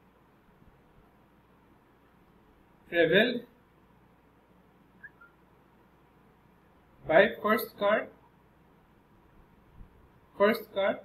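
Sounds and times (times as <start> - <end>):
faint short chirps: 5.0 - 5.4.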